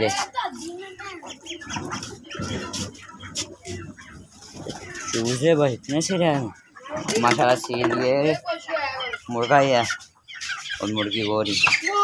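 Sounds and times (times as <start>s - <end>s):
chickens and chicks calling: 0.0s - 12.0s.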